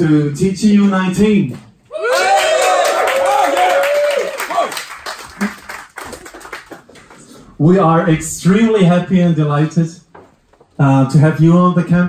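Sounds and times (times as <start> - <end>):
crowd applause: 2.0 - 7.3.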